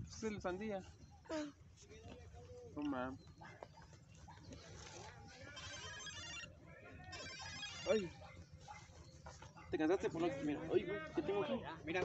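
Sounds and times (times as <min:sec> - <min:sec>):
distant chatter: 0:00.0 - 0:12.0.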